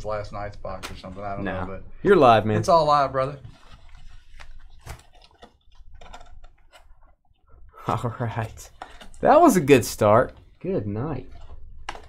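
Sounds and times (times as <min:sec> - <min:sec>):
cloth rustling: 0:02.7 - 0:07.1.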